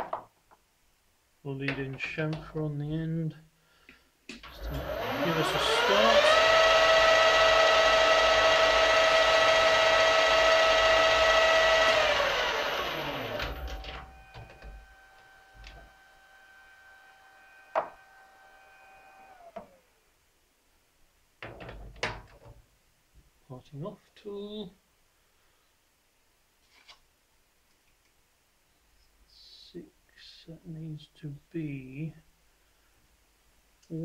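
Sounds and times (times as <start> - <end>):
lathe motor whining: 4.4 - 19.9.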